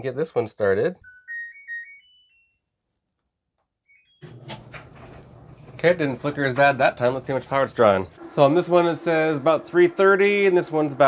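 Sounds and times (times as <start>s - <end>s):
dryer electronic chime: 1.0s - 2.8s, 3.9s - 11.0s.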